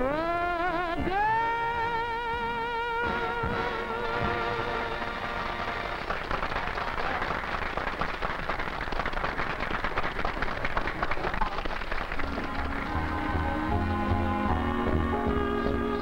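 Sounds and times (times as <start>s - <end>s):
band playing: 0.0s - 6.1s, 12.2s - 16.0s
audience applauding: 4.2s - 14.6s.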